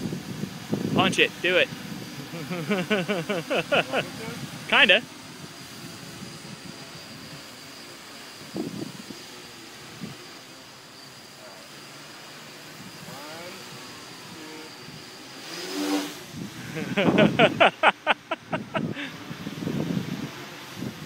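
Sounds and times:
multirotor drone motors whining: 0.0 - 21.0.

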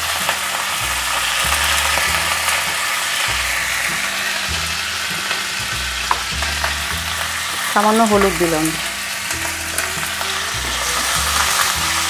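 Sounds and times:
vegetables sizzling in hot oil: 0.0 - 12.0.

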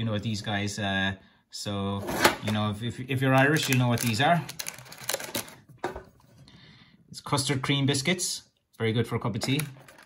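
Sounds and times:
biscuits rattling in plastic tray: 3.3 - 5.6.

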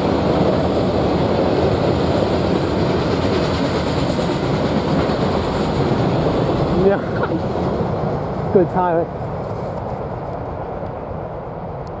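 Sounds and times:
freight train rumbling: 0.0 - 12.0.

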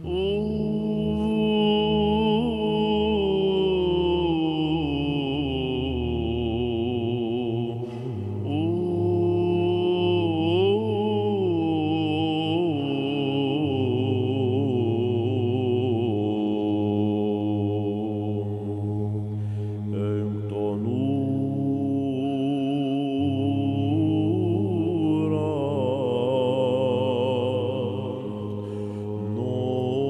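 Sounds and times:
held vocal drone: 0.0 - 30.0
chanter singing melody: 29.1 - 30.0.

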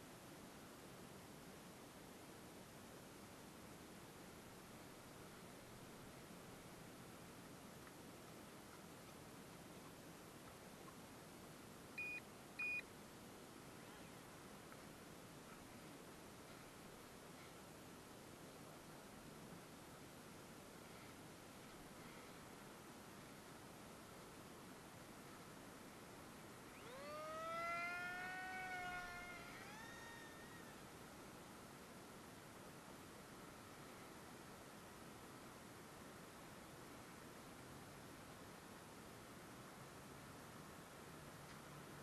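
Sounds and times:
faint electric motor whine: 26.4 - 31.5.

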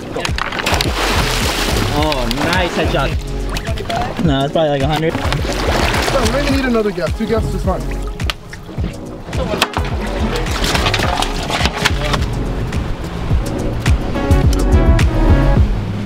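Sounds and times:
music with deep bass line: 0.0 - 16.0.

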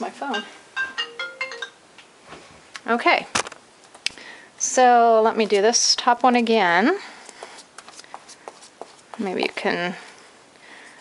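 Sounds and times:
phone ringtone melody: 0.3 - 1.8.

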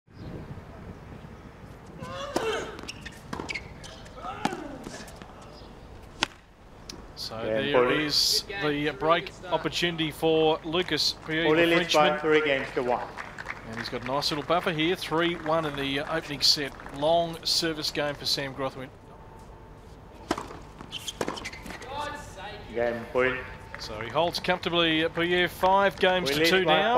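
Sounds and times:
tennis ball off rackets: 1.7 - 7.1, 20.2 - 22.3.

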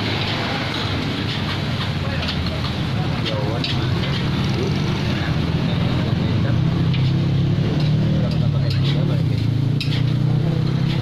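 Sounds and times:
metal spatula scraping wok: 0.0 - 4.4, 6.9 - 11.0
gas burner and frying: 0.0 - 11.0.

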